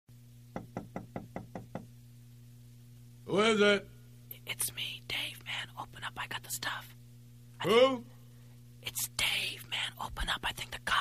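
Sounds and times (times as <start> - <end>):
faint low hum: 0.1 - 11.0
knocking on a door: 0.5 - 1.9.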